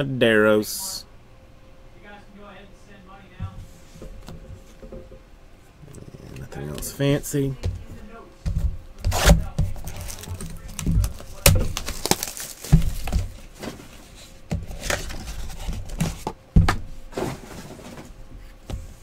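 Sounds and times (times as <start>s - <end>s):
cardboard rustling: 8.5s - 16.4s
cardboard boxes knocking on table: 12.6s - 13.8s.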